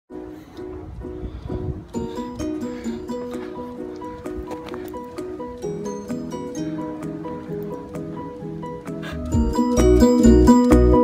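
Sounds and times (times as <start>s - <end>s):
plucked-string tune: 2.0s - 11.0s.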